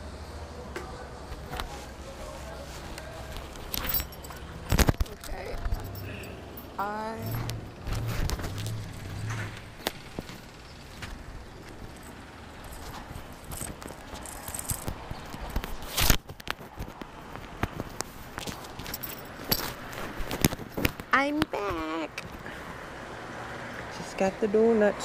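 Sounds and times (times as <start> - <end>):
gear handling clicks and rustles: 2.8 - 21.2.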